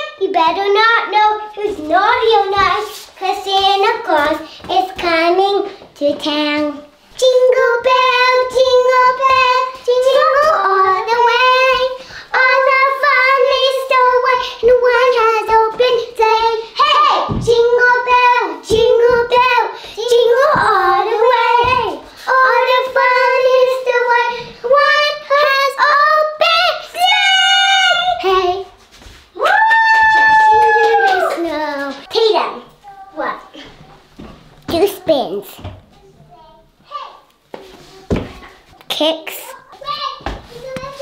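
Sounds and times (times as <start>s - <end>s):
girls singing unaccompanied: 0.0s - 28.8s
child's voice: 31.3s - 34.0s, 34.7s - 41.0s.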